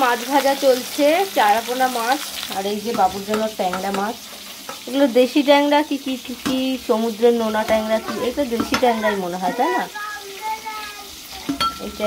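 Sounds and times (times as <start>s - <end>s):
fish sizzling in oil: 0.0s - 12.0s.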